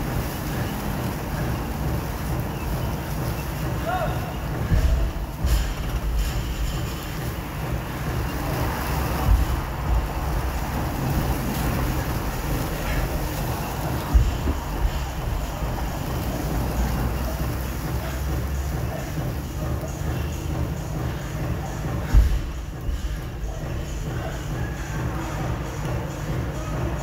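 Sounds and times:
street traffic: 0:00.0 - 0:27.0
wind: 0:00.0 - 0:27.0.

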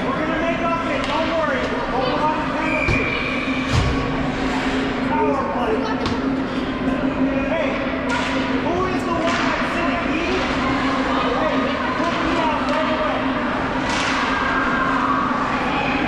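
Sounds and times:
steady hum: 0:00.0 - 0:16.0
hockey sticks and puck cracking: 0:09.2 - 0:09.7, 0:13.8 - 0:14.5.

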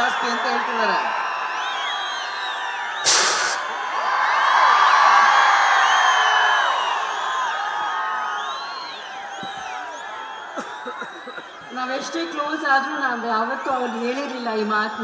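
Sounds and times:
crowd cheering and whooping: 0:00.0 - 0:15.0
whistles from crowd: 0:00.0 - 0:15.0
sharp hissing blast: 0:03.0 - 0:03.7.

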